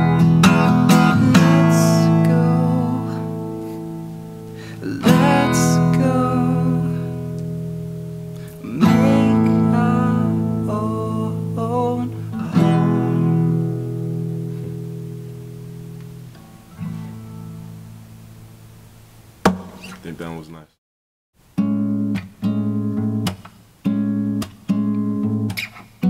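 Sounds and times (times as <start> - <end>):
acoustic guitar strumming chords: 0.0 - 18.8, 21.5 - 26.0.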